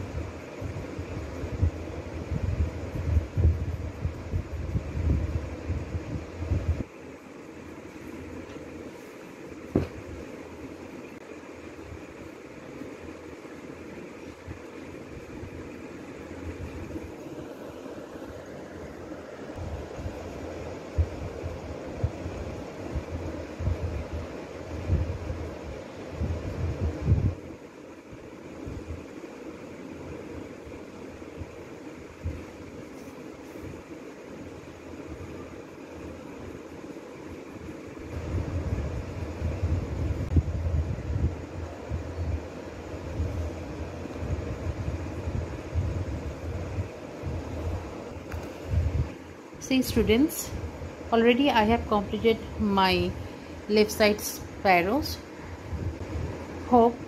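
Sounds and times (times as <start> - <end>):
steady background noise: 0.0 - 57.0.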